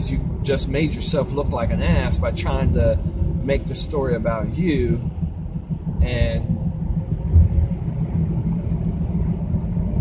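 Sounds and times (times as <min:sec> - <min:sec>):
car cabin rumble: 0:00.0 - 0:10.0.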